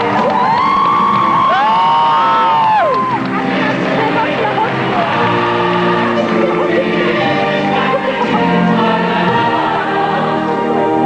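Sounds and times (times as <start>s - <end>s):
stage music: 0.0s - 11.0s.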